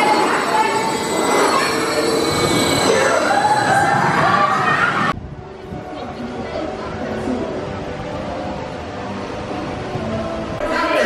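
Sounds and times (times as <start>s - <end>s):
coaster wheels rolling on track: 0.0s - 5.2s.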